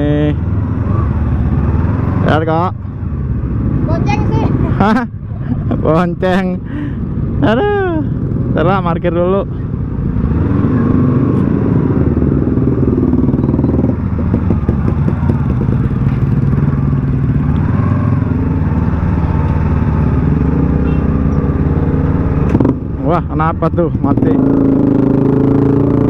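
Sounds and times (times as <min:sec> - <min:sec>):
motorcycle engine running at low revs: 0:09.9 - 0:26.0.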